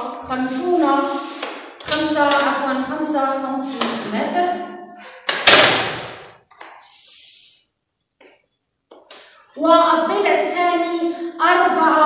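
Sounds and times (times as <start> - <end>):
chalk scratching on blackboard: 0.6 - 1.6, 6.8 - 7.6.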